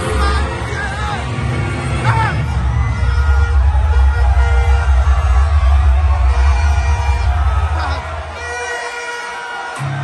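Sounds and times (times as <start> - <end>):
loud concert music with heavy bass: 0.0 - 10.0.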